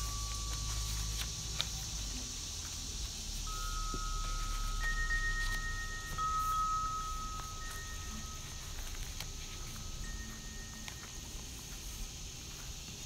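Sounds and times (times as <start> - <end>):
soft chime-like music: 0.0 - 2.4, 3.4 - 12.2
pages being turned: 0.0 - 13.0.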